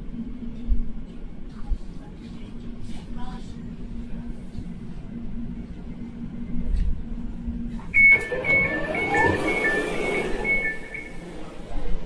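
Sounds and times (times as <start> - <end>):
door mechanism whirring: 8.0 - 11.1
door alert beeps: 8.0 - 11.2.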